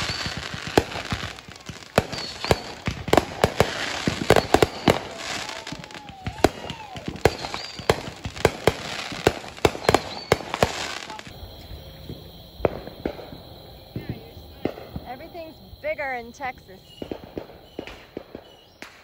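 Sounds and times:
fireworks banging: 0.0s - 19.0s
fireworks crackling hiss: 0.0s - 19.0s.

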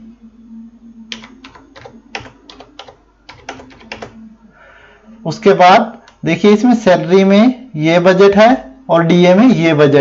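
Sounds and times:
keyboard typing: 1.1s - 4.2s.

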